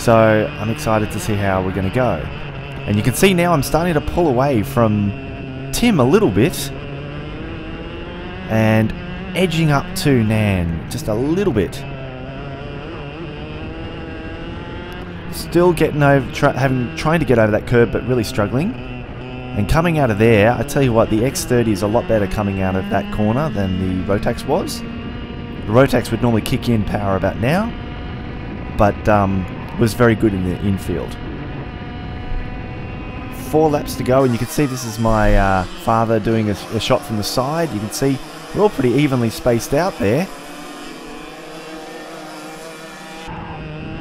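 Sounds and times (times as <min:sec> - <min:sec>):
kart engine running: 0:00.0 - 0:44.0.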